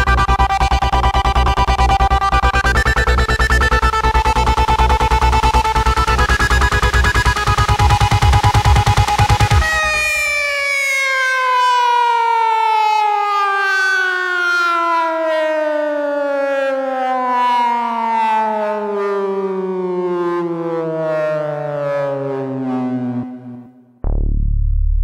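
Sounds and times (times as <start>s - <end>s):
synthesizer tone sliding down: 0.0s - 12.0s, 18.1s - 25.0s.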